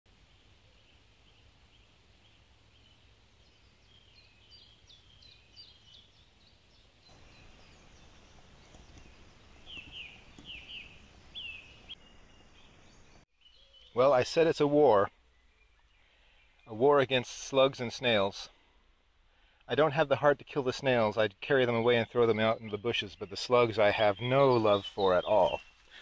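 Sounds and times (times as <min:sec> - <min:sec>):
birds chirping: 0:00.2 - 0:26.0.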